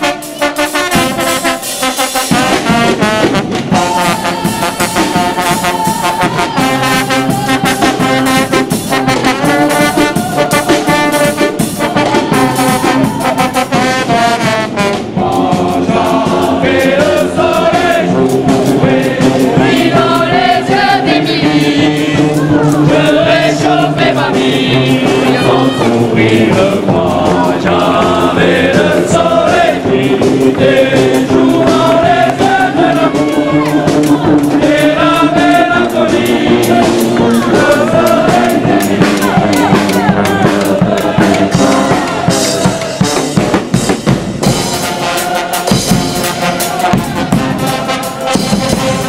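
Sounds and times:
brass band playing: 0:00.0 - 0:49.0
cymbals: 0:00.0 - 0:49.0
steady drum beat: 0:00.0 - 0:49.0
voices singing along: 0:00.0 - 0:49.0.

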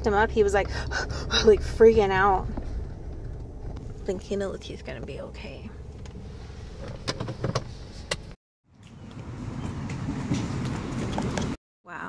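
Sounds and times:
clicks and knocks in car: 0:06.8 - 0:08.3.

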